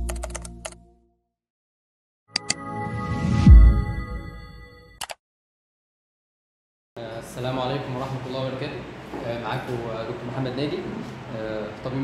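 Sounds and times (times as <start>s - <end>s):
keyboard typing: 0.0s - 0.8s.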